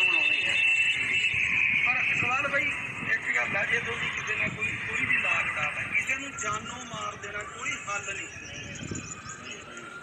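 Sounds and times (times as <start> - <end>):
high-pitched whine: 0.0 - 10.0
men talking: 0.0 - 10.0.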